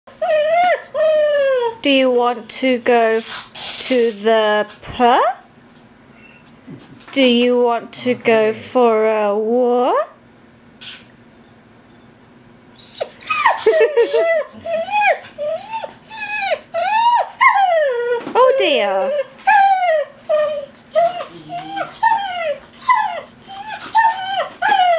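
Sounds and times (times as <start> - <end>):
dog whining: 0.1 - 2.6, 12.7 - 24.9.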